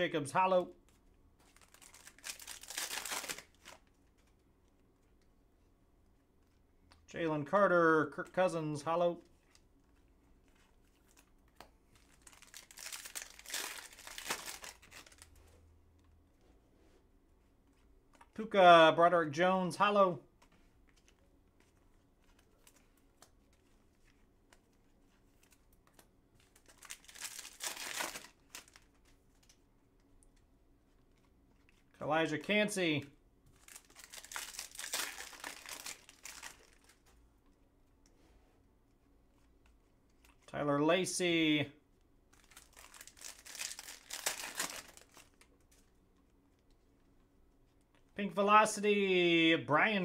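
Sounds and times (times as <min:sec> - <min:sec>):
foil wrapper crinkling and tearing: 0:01.4 - 0:04.3, 0:10.7 - 0:15.4, 0:25.4 - 0:29.6, 0:33.5 - 0:37.1, 0:42.3 - 0:45.9.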